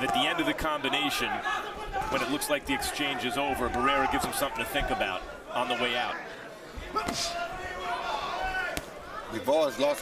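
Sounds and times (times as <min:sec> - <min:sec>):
faint arena voices: 0:00.0 - 0:10.0.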